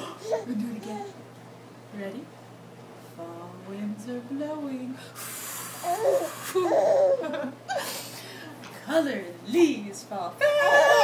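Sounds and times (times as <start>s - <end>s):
baby laughing: 5.9s - 7.5s.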